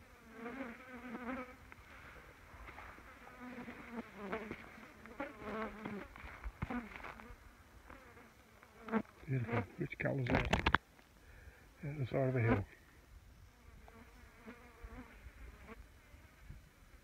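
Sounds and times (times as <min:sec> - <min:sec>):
flies buzzing: 0:00.0 - 0:10.6, 0:12.0 - 0:17.0.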